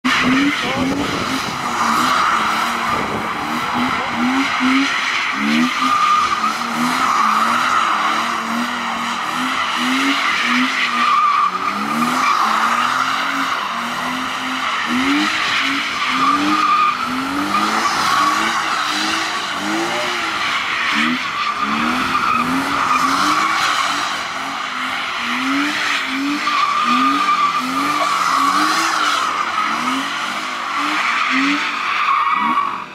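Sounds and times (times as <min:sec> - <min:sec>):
car engine revving: 0:00.0 - 0:32.9.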